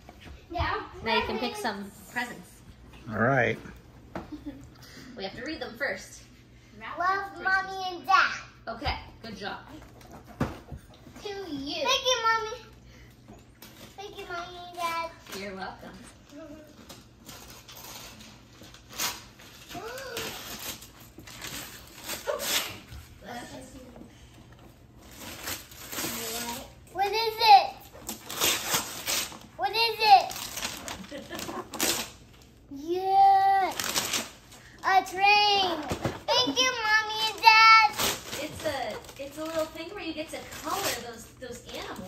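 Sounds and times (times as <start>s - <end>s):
wrapping paper tearing: 16.2s - 23.3s, 25.0s - 42.0s.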